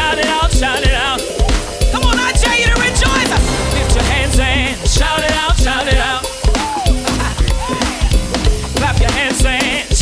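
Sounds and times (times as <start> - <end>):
wavering lead voice singing: 0.0 - 7.9
drums: 0.0 - 10.0
upbeat gospel song: 0.0 - 10.0
sustained bass note: 2.7 - 5.9.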